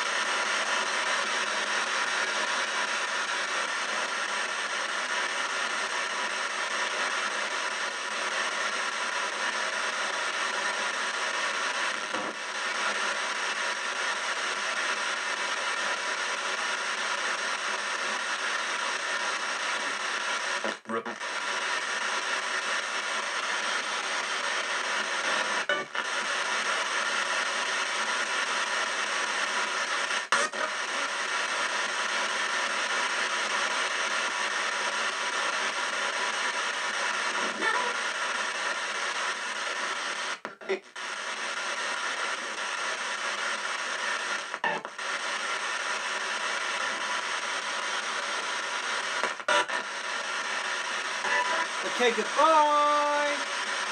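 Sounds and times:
radio static: 0.0 - 53.9
word-like radio fragments: 19.8 - 22.4, 49.1 - 53.8.

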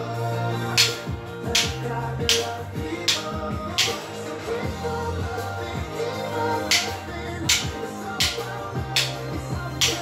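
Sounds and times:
upbeat pop music: 0.0 - 10.0
drumsticks clicking together: 0.8 - 4.1, 6.6 - 9.2, 9.8 - 10.0.

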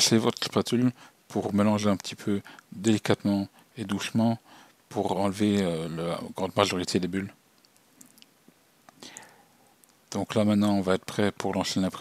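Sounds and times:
soft clicks: 7.6 - 10.0.

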